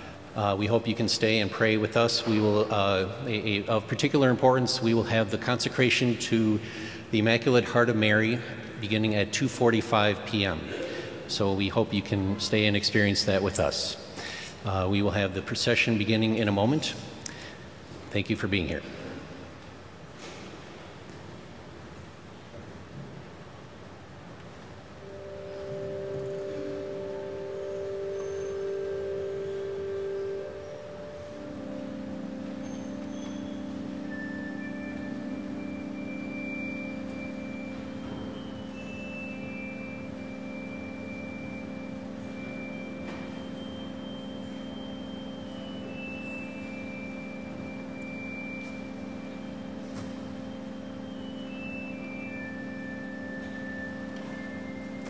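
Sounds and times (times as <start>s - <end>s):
organ playing processional music: 0.0s - 18.9s, 24.9s - 55.0s.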